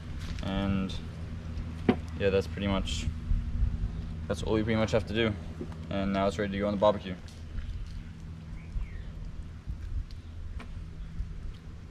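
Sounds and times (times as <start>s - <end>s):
low rumble: 0.0s - 11.9s
steady low hum: 0.0s - 11.9s.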